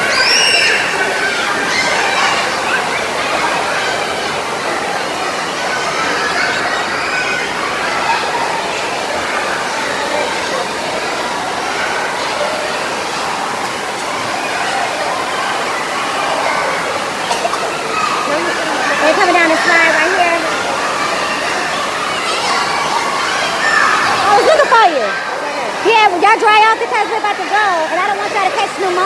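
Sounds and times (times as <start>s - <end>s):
hubbub of swimmers' voices: 0.0s - 29.0s
running water rushing: 0.0s - 29.0s.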